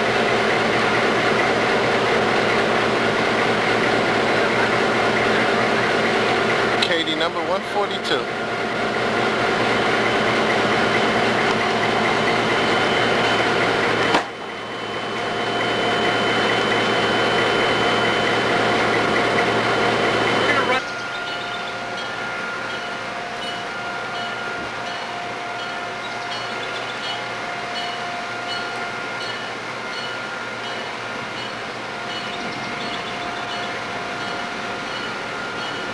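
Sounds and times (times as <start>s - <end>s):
diesel locomotive engine idling: 0.0s - 35.9s.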